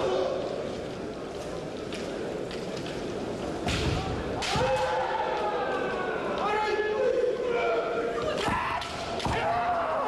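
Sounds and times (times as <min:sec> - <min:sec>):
bamboo sword strikes: 0:03.6 - 0:04.9
fighters shouting: 0:04.4 - 0:10.0.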